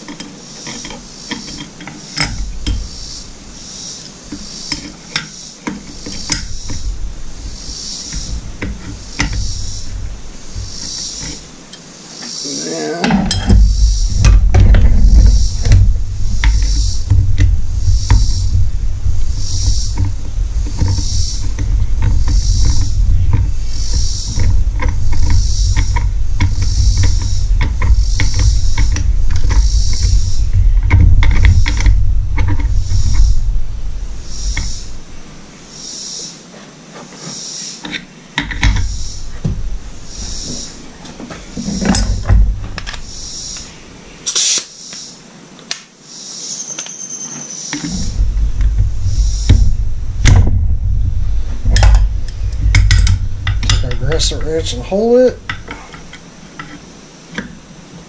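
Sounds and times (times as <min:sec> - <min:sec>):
loud deep rumble: 0:13.5 - 0:35.5, 0:38.7 - 0:43.3, 0:47.9 - 0:56.2.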